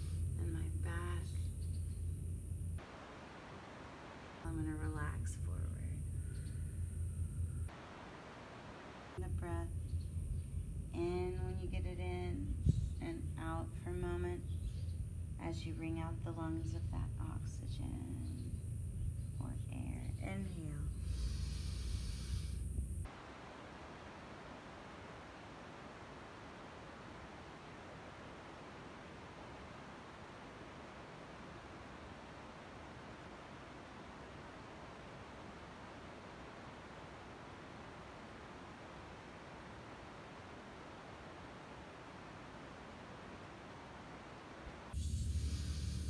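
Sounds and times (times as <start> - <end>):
faint steady hiss: 0.0 - 46.0.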